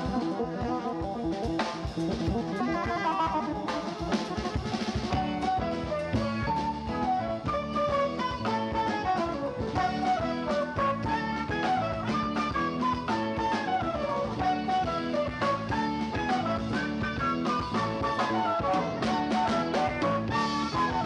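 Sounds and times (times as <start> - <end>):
drum kit: 0.0 - 21.0
electric guitar: 0.0 - 21.0
horn and saxophone section: 2.2 - 21.0.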